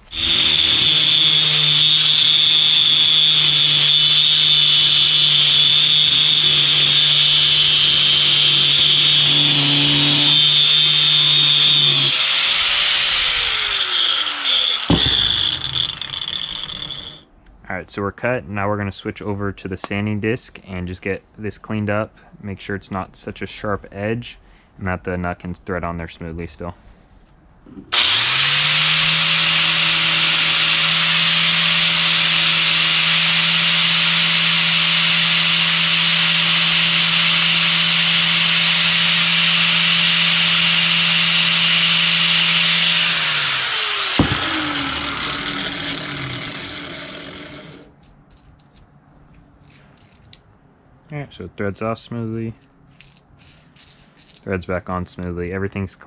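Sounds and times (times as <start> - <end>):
angle grinder cutting steel: 0.0 - 17.2, 27.9 - 48.0
sharp knock: 14.8 - 16.7, 44.2 - 44.6.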